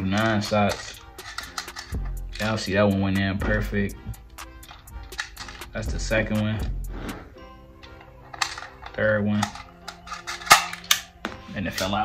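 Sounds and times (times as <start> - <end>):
quiet background music: 0.0 - 12.0
bbs clicking into magazine: 0.2 - 2.6, 4.4 - 5.7, 7.8 - 11.2.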